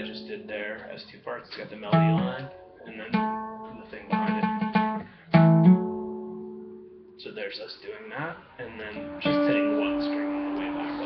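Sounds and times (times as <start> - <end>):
acoustic guitar notes: 0.0 - 11.0.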